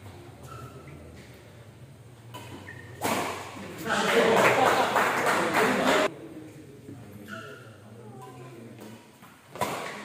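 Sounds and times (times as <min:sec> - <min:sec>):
shoes squeaking on court floor: 0:00.4 - 0:01.4, 0:02.4 - 0:03.1, 0:07.2 - 0:07.8.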